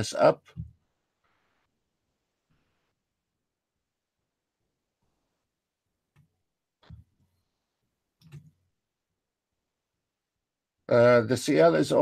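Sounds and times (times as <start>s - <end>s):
computer mouse clicks: 8.2s - 8.6s.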